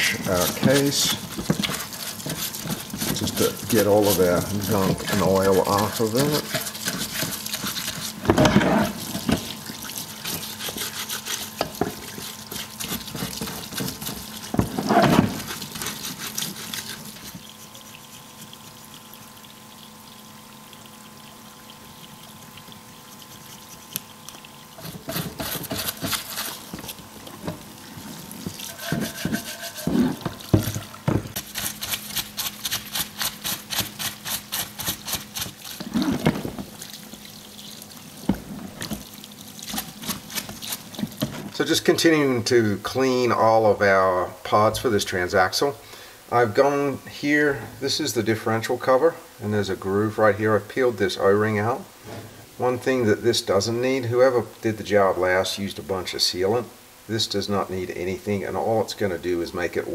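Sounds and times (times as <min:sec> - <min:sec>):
brush scrubbing metal: 0:00.0 - 0:19.4, 0:22.8 - 0:42.0
cleaning fluid pouring from nozzle: 0:00.0 - 0:41.9
faint steady hum: 0:00.0 - 0:59.9.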